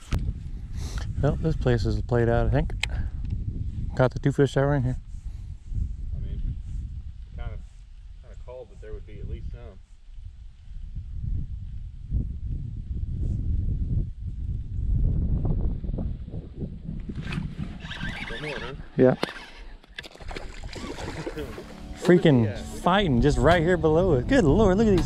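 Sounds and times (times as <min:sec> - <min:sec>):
wind buffeting microphone: 0:00.0 - 0:19.5, 0:20.2 - 0:25.0.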